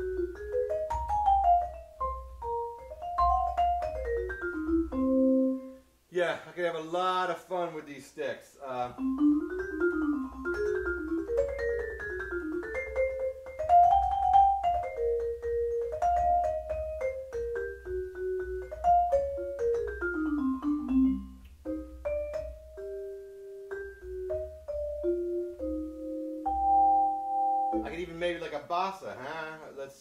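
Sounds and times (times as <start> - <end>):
marimba melody: 0.0 - 5.8, 8.7 - 28.5.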